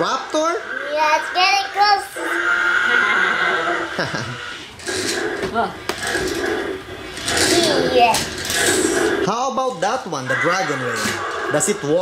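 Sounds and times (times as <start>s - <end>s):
toy dinosaur roars and growls: 0.5s - 5.2s, 10.2s - 12.0s.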